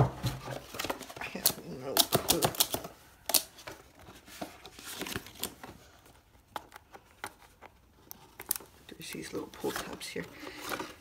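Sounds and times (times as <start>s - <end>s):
plastic packaging clicks and taps: 0.8s - 3.5s.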